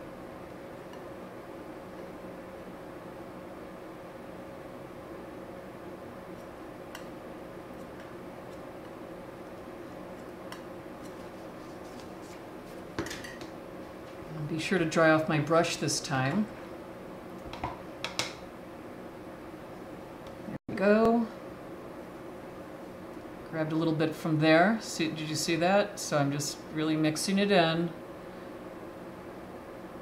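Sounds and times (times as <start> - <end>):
room hum: 0.0 - 30.0.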